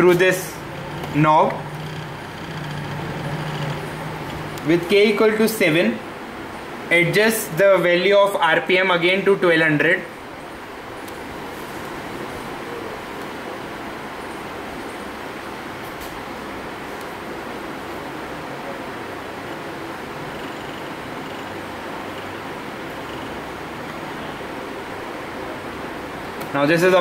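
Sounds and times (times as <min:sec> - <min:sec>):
small motor whirring: 0:00.6 - 0:04.6.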